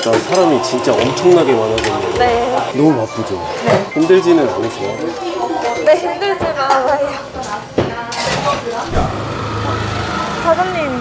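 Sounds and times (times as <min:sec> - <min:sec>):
busy indoor noise: 0:00.0 - 0:11.0.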